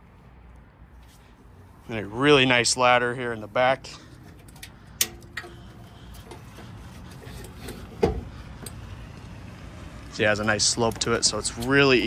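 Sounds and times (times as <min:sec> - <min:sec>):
ladder thump: 0:07.6 - 0:08.3.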